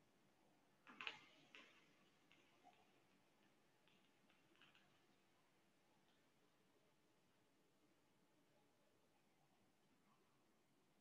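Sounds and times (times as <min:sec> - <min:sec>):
faint irregular clicks: 0:00.0 - 0:07.5.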